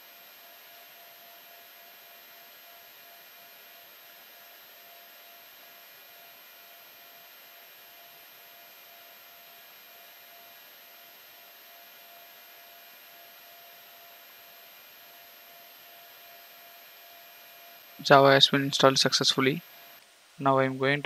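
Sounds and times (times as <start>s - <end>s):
faint background hiss: 0.0s - 21.0s
thin high whine: 0.0s - 21.0s.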